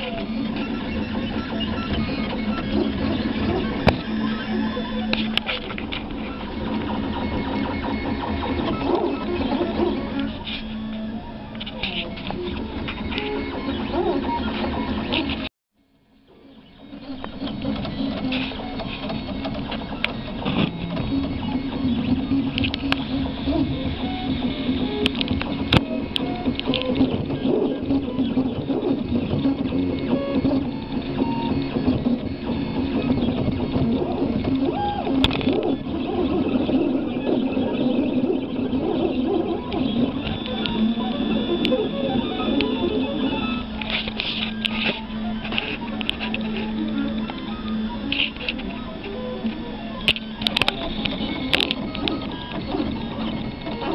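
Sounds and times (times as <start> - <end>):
printer motors buzzing: 0.0 - 15.5, 16.2 - 53.9.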